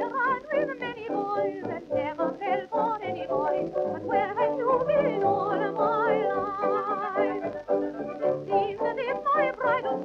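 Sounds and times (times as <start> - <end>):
old dance band record: 0.0 - 10.0.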